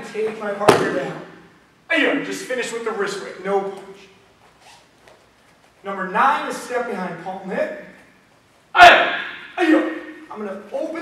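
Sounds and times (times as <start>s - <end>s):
man speaking: 0.0s - 4.2s, 5.8s - 8.0s, 8.8s - 11.0s.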